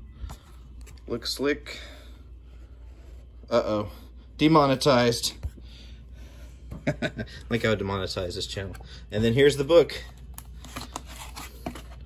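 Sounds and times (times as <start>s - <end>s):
book scraping against cardboard: 10.6s - 12.0s.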